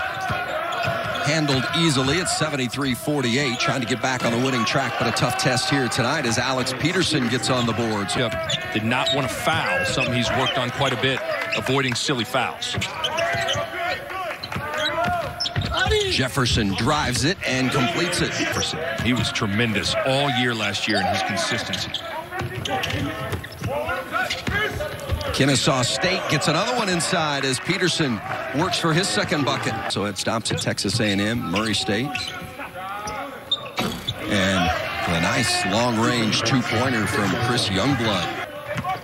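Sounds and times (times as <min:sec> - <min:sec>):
sneakers squeaking: 0:00.0 - 0:27.1, 0:28.2 - 0:39.0.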